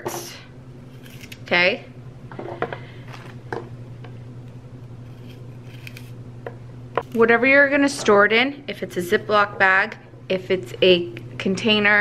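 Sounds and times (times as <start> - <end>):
steady low hum: 0.0 - 12.0
knife trimming celery on board: 0.9 - 1.4, 5.0 - 6.2.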